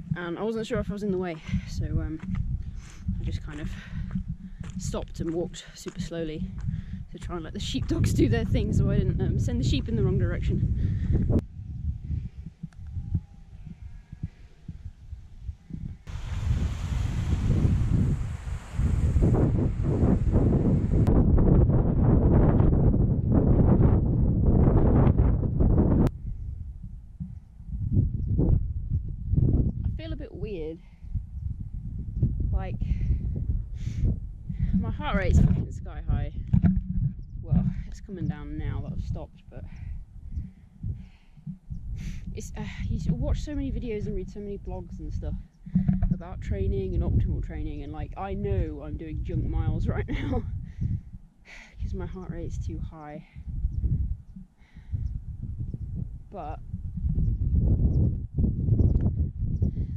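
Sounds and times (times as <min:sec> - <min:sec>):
wind buffeting microphone: 0:00.0 - 0:59.9
runner breathing hard: 0:02.5 - 0:04.8, 0:06.5 - 0:07.1, 0:10.7 - 0:11.4, 0:32.8 - 0:34.8, 0:39.6 - 0:42.9, 0:50.6 - 0:51.8, 0:54.5 - 0:55.2.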